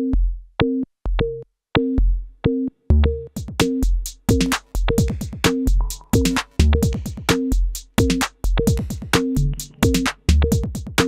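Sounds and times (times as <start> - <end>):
drum machine techno pattern: 0.0 - 11.0.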